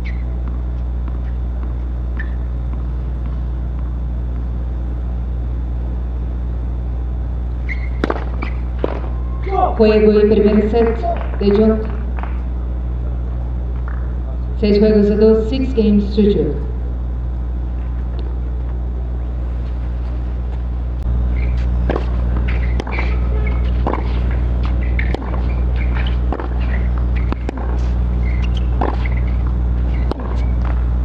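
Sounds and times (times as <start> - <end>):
steady low hum: 0.0 - 31.0
tennis ball hits: 7.9 - 9.2, 21.5 - 30.8.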